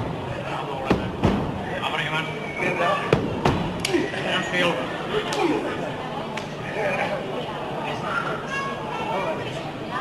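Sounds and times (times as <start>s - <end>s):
audience voices: 0.0s - 10.0s.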